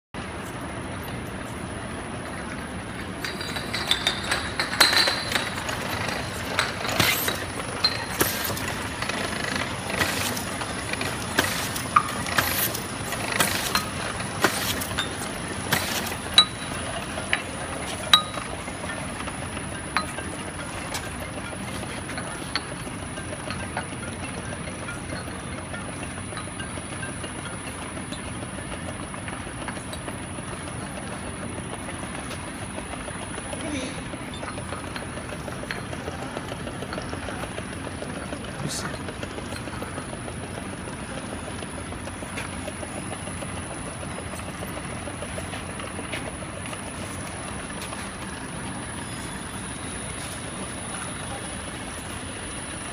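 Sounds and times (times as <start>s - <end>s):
labeling machine high whine: 0.3s - 52.9s
glass bottles clinking: 2.6s - 30.2s.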